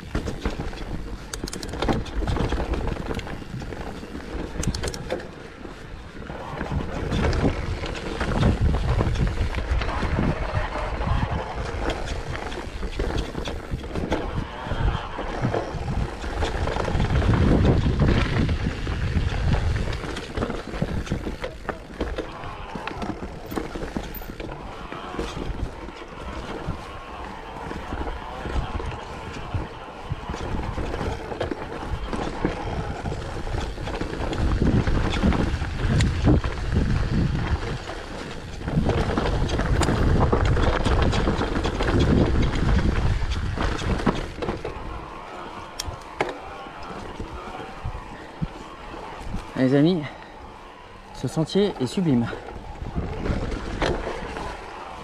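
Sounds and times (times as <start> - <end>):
bike rattling over bumps: 0.0 - 55.0
tyres rolling over dirt: 0.0 - 55.0
wind on microphone: 6.3 - 55.0.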